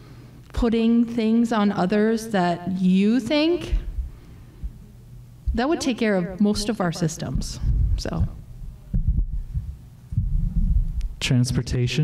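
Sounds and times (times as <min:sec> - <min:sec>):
low handling rumble: 0:07.3 - 0:11.2
microphone handling thuds: 0:07.3 - 0:11.2.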